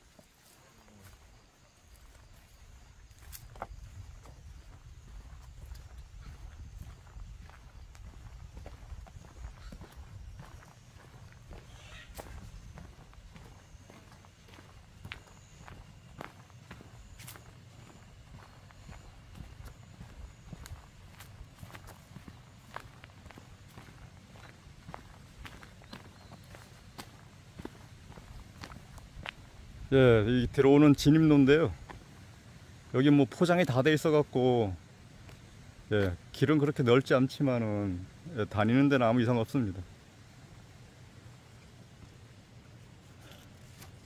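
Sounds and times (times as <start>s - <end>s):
footsteps on gravel: 0.0s - 29.8s.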